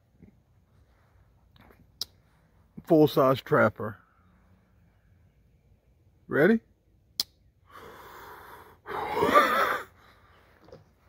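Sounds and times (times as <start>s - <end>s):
breathy exhale: 7.7s - 10.3s.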